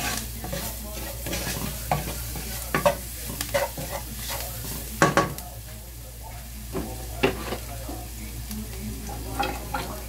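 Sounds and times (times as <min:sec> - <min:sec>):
food sizzling in oil: 0:00.0 - 0:10.0.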